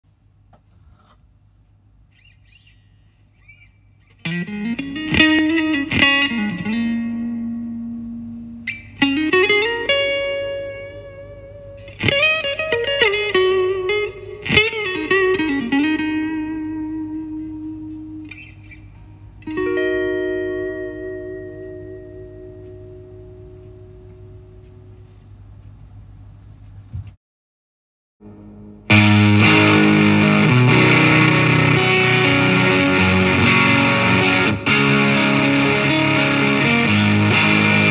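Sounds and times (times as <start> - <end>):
low amp hum: 0.1 - 27.2, 28.2 - 37.9
clean electric guitar: 4.2 - 25.2, 28.2 - 37.9.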